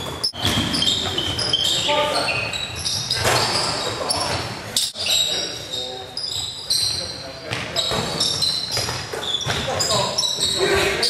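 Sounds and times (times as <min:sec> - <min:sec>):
basketball bouncing: 0:00.0 - 0:01.5, 0:07.5 - 0:09.8
sneakers squeaking on hardwood: 0:00.0 - 0:11.0.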